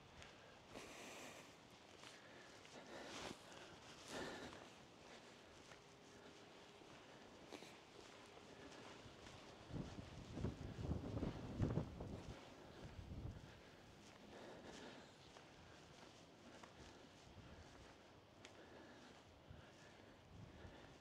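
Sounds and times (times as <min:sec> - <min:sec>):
faint outdoor background: 0:00.0 - 0:21.0
wind buffeting microphone: 0:09.7 - 0:13.6.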